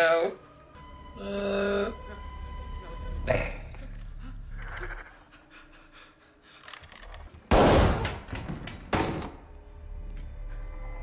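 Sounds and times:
loud pistol shots: 7.5 - 8.0.

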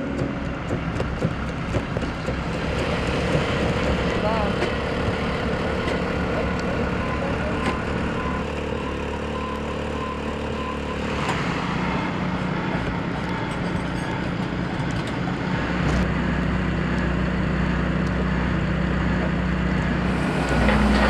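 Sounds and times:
machinery engines droning: 0.0 - 21.0.

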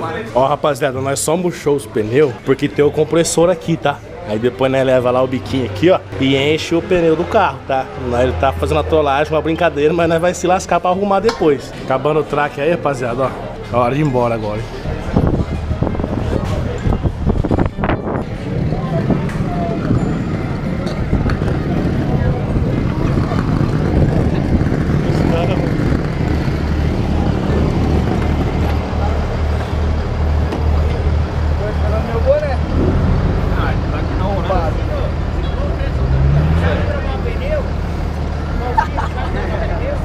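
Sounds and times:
vehicle engine revving: 15.0 - 40.0.

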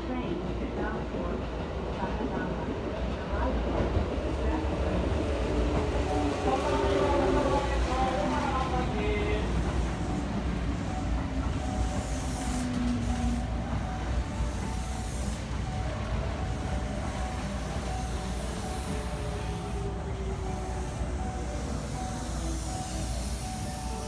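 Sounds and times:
electric train rolling rumble: 0.0 - 24.0.

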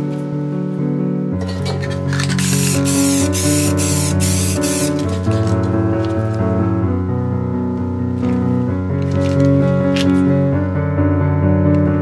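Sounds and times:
background music: 0.0 - 12.0
spray-paint can hissing: 1.8 - 5.2.

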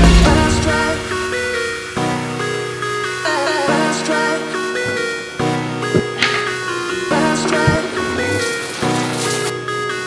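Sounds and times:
electronic background music: 0.0 - 10.0
water spraying from shower head: 6.2 - 9.6.

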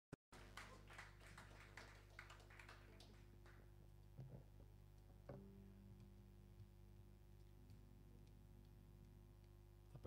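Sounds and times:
low electrical hum: 0.4 - 10.0.

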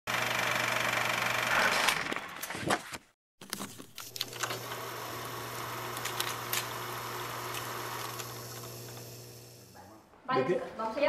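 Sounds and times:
film projector clatter: 0.1 - 2.2, 3.4 - 9.7.

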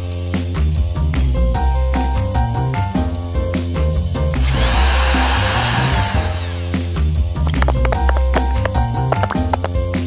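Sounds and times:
upbeat background music: 0.3 - 10.0
cordless drill whine: 4.4 - 6.8.

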